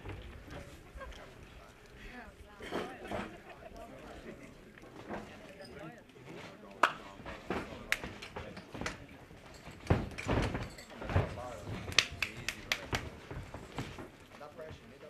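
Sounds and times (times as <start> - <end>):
bodies thudding on a mat: 9.7 - 11.9.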